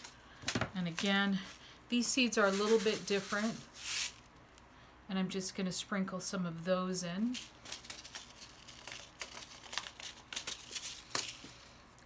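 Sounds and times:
paper packet rustling: 0.0s - 4.2s, 7.3s - 11.5s.

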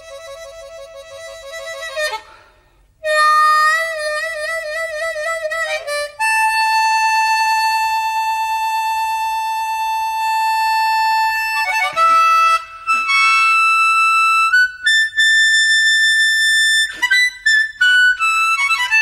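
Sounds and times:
blues harmonica: 0.0s - 19.0s.

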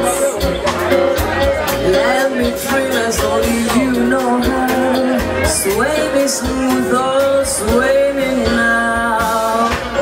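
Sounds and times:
instrumental accompaniment: 0.0s - 10.0s
woman singing into a microphone: 1.8s - 10.0s.

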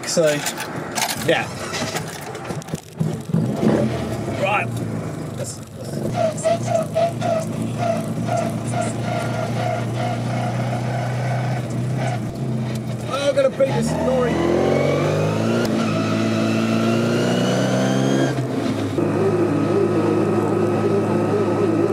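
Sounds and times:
car engine running: 1.6s - 15.6s, 17.2s - 21.9s.

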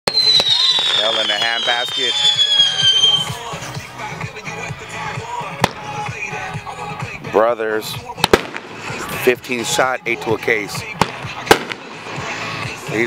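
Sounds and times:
firework bang: 0.1s - 3.4s, 5.6s - 6.0s, 8.2s - 9.1s, 11.0s - 12.3s
falling firework whistle: 0.1s - 3.5s
firework pop: 11.0s - 11.9s.

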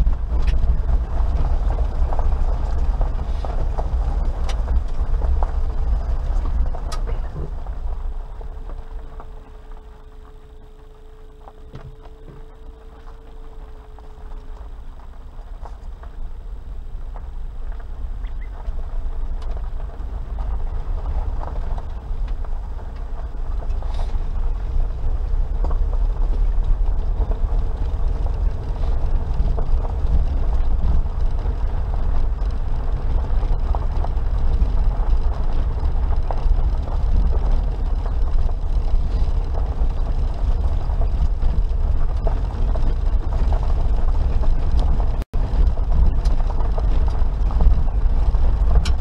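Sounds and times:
engine and road rumble: 0.0s - 49.0s
gravel ticking under tyres: 0.0s - 49.0s.

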